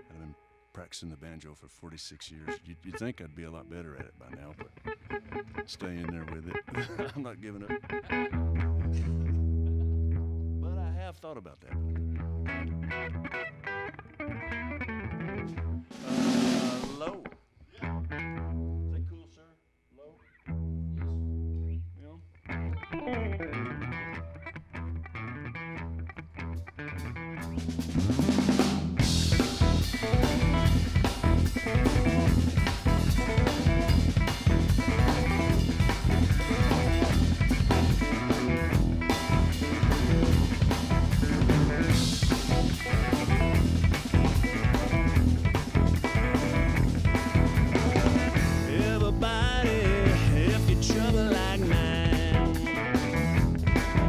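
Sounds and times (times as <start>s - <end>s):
electric guitar: 4.0s - 10.7s, 11.7s - 18.9s, 22.4s - 54.0s
electric bass: 8.0s - 11.0s, 11.7s - 13.6s, 17.8s - 19.0s, 20.5s - 54.0s
drum kit: 15.9s - 17.2s, 27.4s - 54.0s.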